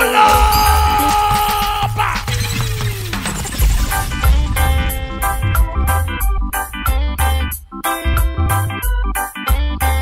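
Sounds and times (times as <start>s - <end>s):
crash-like effect: 0.5s - 8.7s
dance music with bass beat: 1.8s - 8.9s
downward sliding tone: 3.9s - 8.5s.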